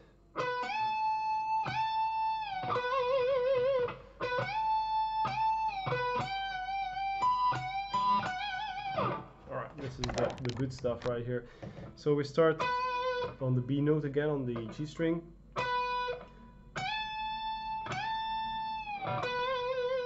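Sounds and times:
electric guitar lead lick: 0.0 - 9.4, 12.6 - 13.4, 15.6 - 20.0.

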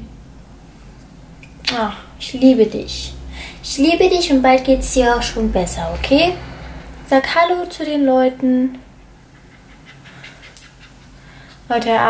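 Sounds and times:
puppy panting: 9.1 - 11.9.

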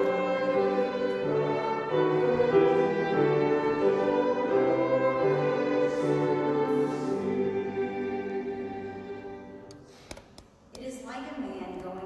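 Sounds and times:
piano and violin: 0.0 - 9.8.

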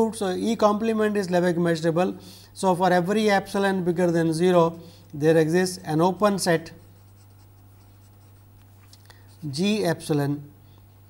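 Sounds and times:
steady low hum: 0.0 - 11.0
marker pen scratching on paper: 6.6 - 9.6.

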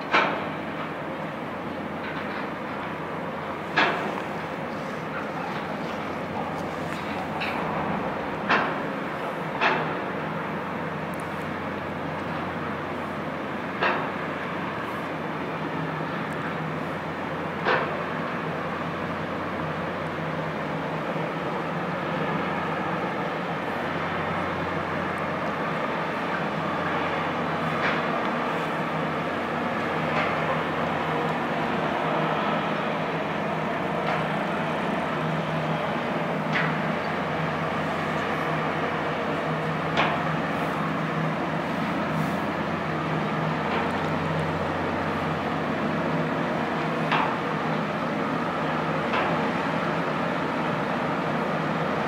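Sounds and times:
diesel engines droning: 0.1 - 52.0.

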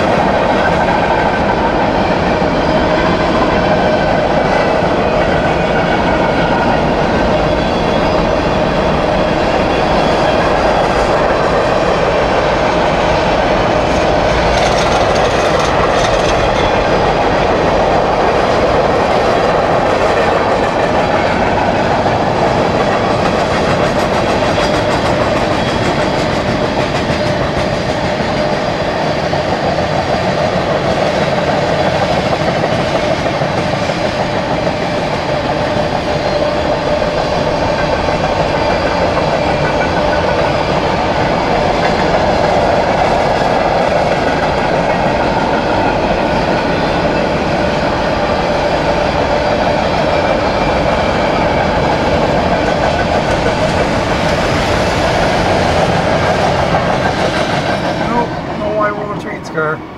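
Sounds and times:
freight train rumbling past: 0.0 - 59.9.

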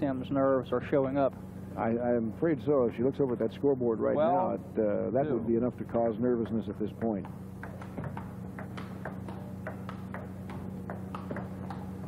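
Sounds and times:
low electrical hum: 0.0 - 12.0
table tennis ball clicking: 7.6 - 12.0.

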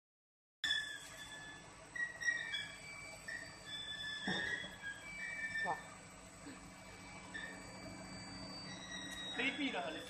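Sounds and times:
pump motor whining: 0.7 - 10.0.

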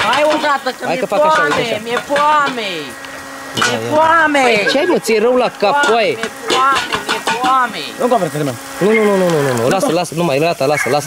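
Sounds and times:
person speaking: 0.0 - 3.0, 3.6 - 11.0.

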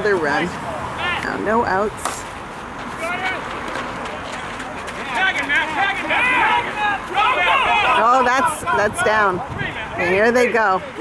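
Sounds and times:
people calling out: 0.2 - 1.9, 2.9 - 11.0.

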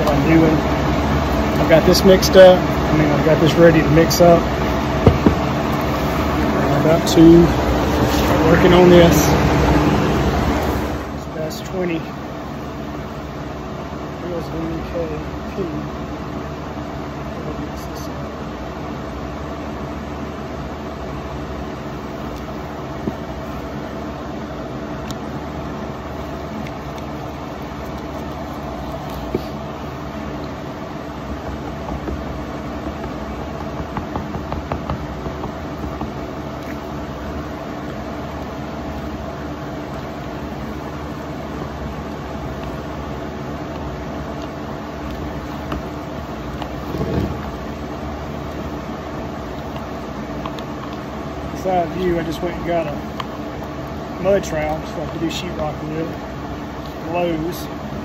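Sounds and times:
machine hum: 0.0 - 58.0.

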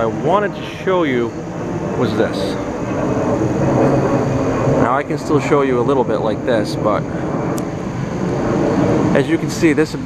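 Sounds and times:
engine drone: 0.0 - 10.0.

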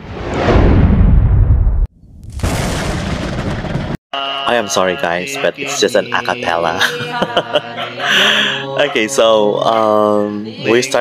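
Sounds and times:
deep boom into rumble: 0.0 - 4.0.

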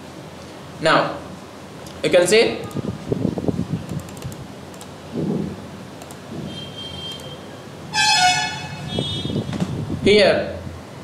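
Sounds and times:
vehicle horn honking: 6.5 - 9.5.

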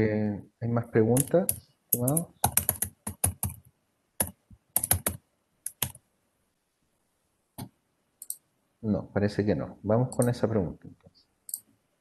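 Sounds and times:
typing on computer keyboard: 1.2 - 3.6, 4.2 - 6.0.

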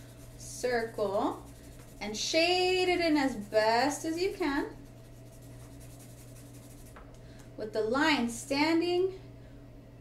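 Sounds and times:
marker scratching on paper: 0.0 - 7.0.

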